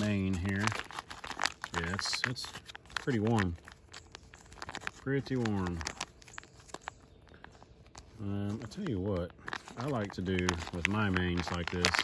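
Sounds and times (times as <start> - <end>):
foil pouch crinkling: 0.0 - 12.0.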